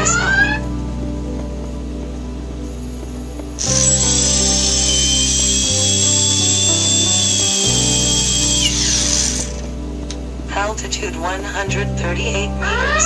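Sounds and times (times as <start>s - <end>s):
background music: 0.0s - 13.0s
drone motors whining: 3.6s - 9.8s.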